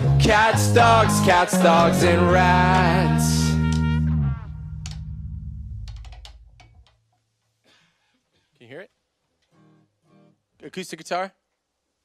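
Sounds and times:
sharp clicks: 5.8 - 7.0.

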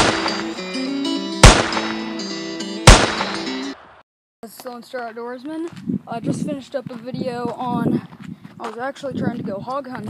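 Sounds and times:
gunshot sound effects: 0.0 - 0.5, 1.4 - 2.1, 2.9 - 4.0
acoustic guitar music: 0.0 - 3.8.

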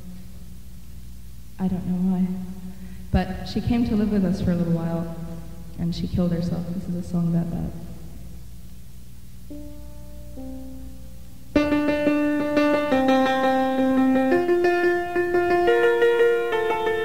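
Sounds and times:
low hum: 0.0 - 17.0
piano chords: 9.5 - 17.0.

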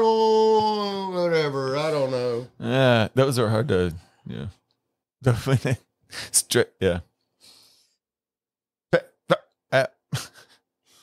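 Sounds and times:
person laughing: 10.1 - 10.6.

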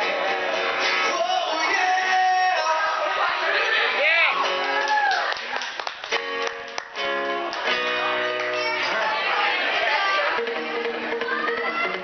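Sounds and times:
strummed acoustic guitar: 0.0 - 4.8, 6.1 - 12.0
man singing: 0.8 - 3.4.

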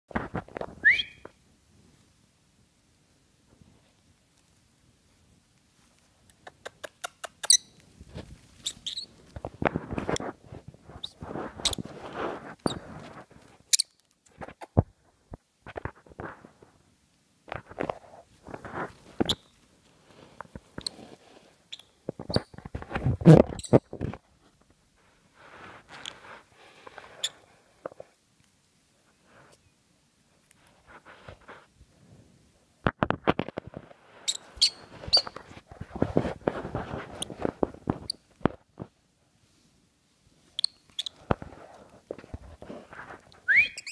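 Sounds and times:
parrot squeaks: 0.8 - 1.2, 7.4 - 7.7, 8.6 - 9.1, 34.3 - 35.4, 40.6 - 41.1, 43.5 - 43.9
rustling of bed covers: 33.4 - 38.1.

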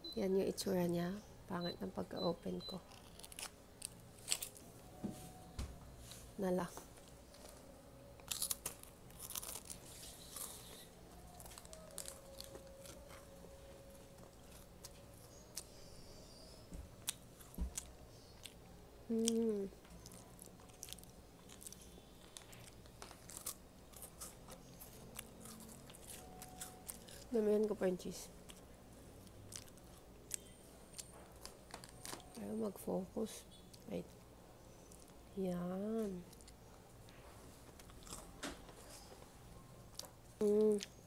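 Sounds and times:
person chewing crackers: 2.8 - 4.6, 7.3 - 15.8, 17.0 - 27.4, 28.4 - 32.4, 37.8 - 38.4.

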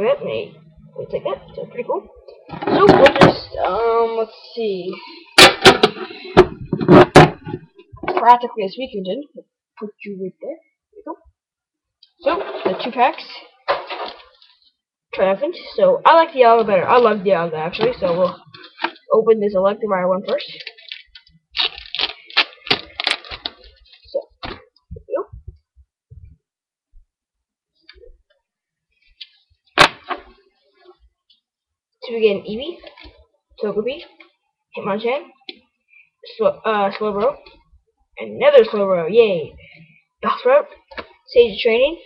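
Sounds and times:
foil wrapper crackling and tearing: 20.5 - 23.8.

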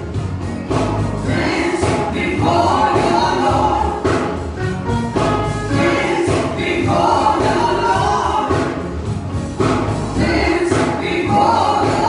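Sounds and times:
instrumental accompaniment: 0.0 - 12.0
woman and man singing gospel: 1.2 - 9.1, 9.8 - 12.0.

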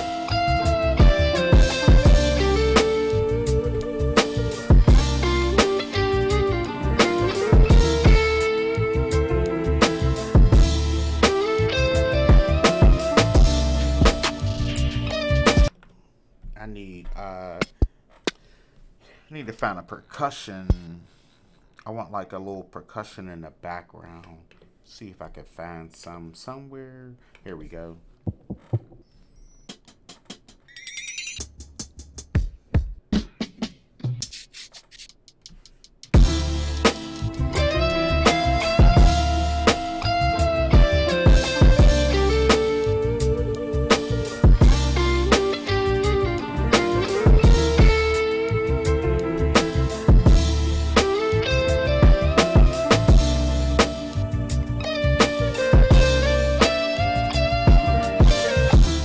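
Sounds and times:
percussion sample hits: 0.0 - 3.1, 4.2 - 5.9, 12.3 - 14.9, 28.3 - 30.7, 36.1 - 37.7, 38.3 - 40.0, 40.7 - 42.8, 43.9 - 45.6, 46.8 - 48.4, 49.6 - 51.3, 52.0 - 54.2, 57.7 - 59.0
deep bass notes: 0.0 - 15.7, 36.2 - 59.0
trap beat: 0.0 - 15.7, 28.3 - 30.6, 33.2 - 59.0.

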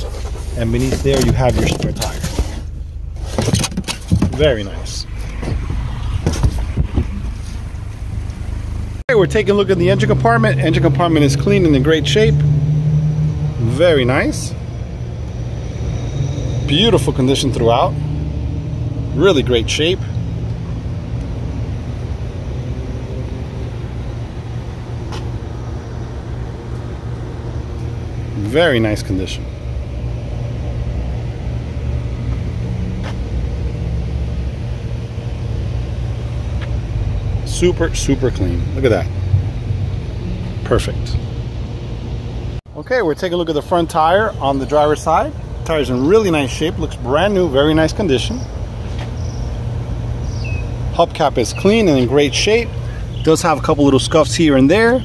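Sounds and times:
car engine idling: 0.0 - 12.3, 12.9 - 55.0
low outdoor background hum: 0.0 - 55.0.

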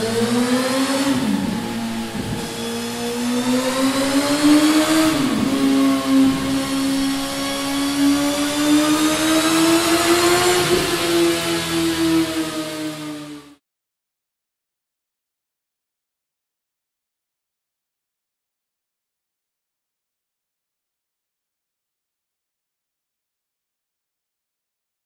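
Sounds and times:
motorcycle engine revving: 0.0 - 13.6.

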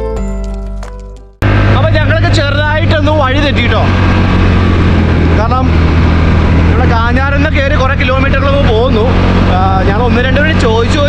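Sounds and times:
motorbike engine drone: 1.4 - 11.0
man talking: 1.7 - 4.0, 5.3 - 5.8, 6.7 - 11.0.

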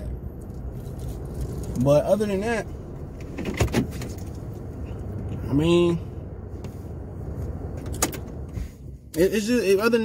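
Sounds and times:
car engine rumble: 0.0 - 10.0
road noise inside car: 0.0 - 10.0.

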